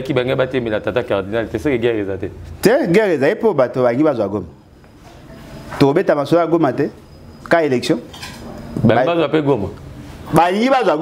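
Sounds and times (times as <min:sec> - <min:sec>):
man speaking: 0:00.0 - 0:04.6, 0:08.8 - 0:11.0.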